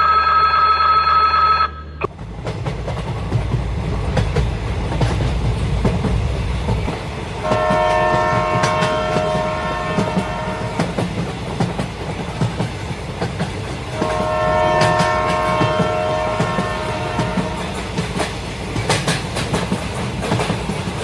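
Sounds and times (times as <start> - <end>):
train wheels clattering over rail joints: 2.1 - 21.0
train horn blast: 7.4 - 11.0, 14.0 - 17.7.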